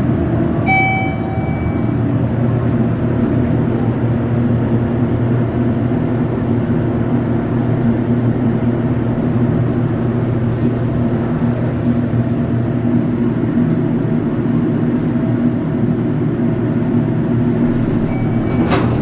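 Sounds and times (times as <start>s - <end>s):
steady low hum: 0.0s - 19.0s
elevator arrival chime: 0.6s - 2.3s, 17.7s - 19.0s.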